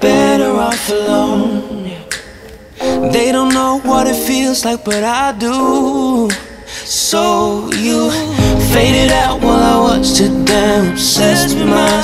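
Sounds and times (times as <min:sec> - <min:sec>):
pop song with female vocals: 0:00.0 - 0:12.0.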